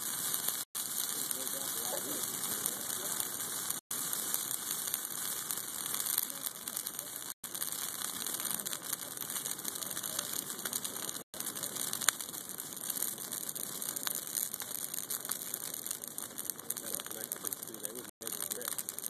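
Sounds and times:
bonfire crackling and popping: 0.0 - 19.0.

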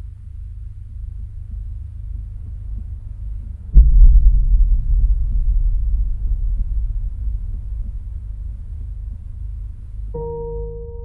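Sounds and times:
low throbbing rumble: 0.0 - 11.0
sudden sharp hit: 3.8 - 10.0.

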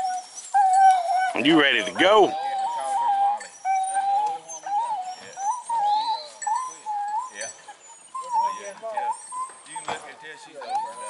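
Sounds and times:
dogs whining: 0.0 - 11.0.

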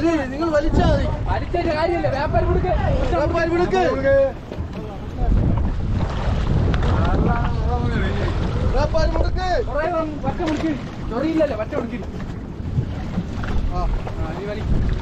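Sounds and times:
men talking: 0.0 - 5.7, 6.8 - 12.5, 13.6 - 14.9
sea water washing: 0.0 - 15.0
wind rumble on microphone: 0.0 - 15.0.

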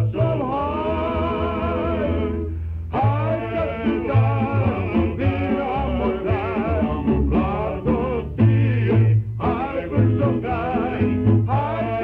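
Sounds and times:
men singing: 0.0 - 12.0
plucked string ensemble: 3.0 - 12.0.

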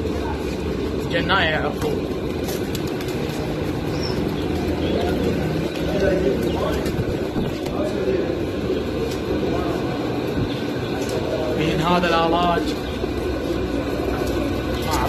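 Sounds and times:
low background hum: 0.0 - 15.0
pigeons cooing: 0.0 - 15.0.

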